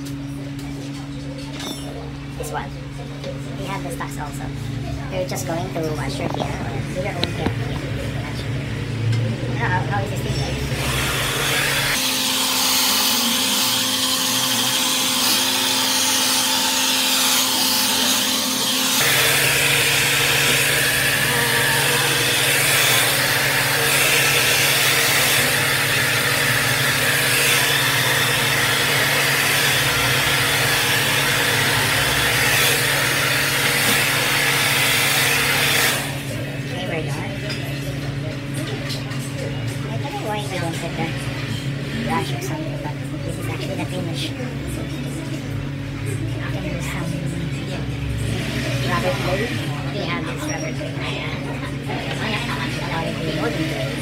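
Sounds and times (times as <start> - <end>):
hair dryer blowing: 9.8 - 37.2.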